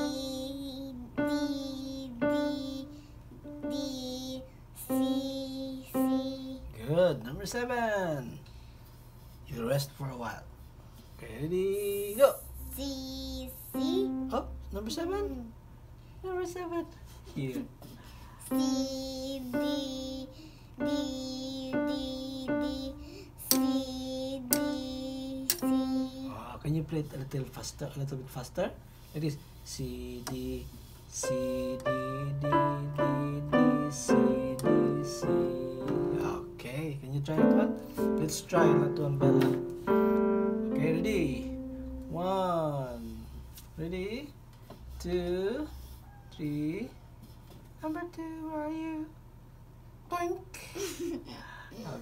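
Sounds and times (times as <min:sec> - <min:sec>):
electronic keyboard notes: 0:13.7 - 0:14.6, 0:31.2 - 0:36.6, 0:37.3 - 0:42.5.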